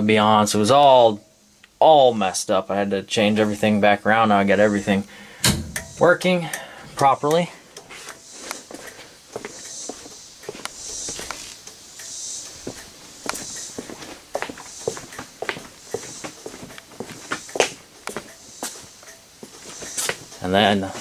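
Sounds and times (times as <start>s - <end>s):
footsteps on concrete: 7.2s - 11.8s, 12.5s - 21.0s.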